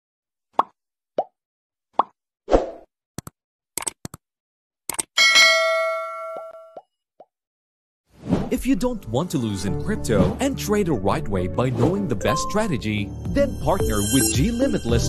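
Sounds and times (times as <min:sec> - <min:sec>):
quick clicks: 0:04.9 - 0:05.1
bright bell ding: 0:05.2 - 0:06.8.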